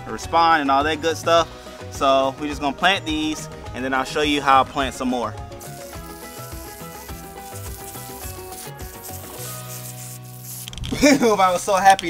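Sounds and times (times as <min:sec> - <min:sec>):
background music: 0:00.0 - 0:12.0
hose spray nozzle hissing: 0:05.6 - 0:11.0.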